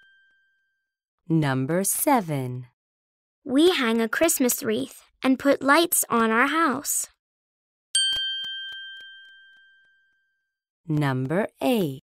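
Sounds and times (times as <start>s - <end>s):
bell-like ding: 0.0s - 0.7s, 8.0s - 10.4s.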